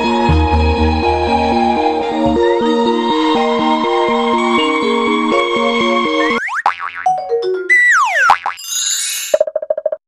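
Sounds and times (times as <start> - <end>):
electronic synth music: 0.3 - 9.4.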